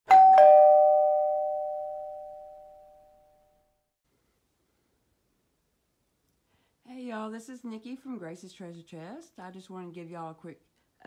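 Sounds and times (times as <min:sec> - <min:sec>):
two-note ding-dong chime: 0:00.1 - 0:03.3.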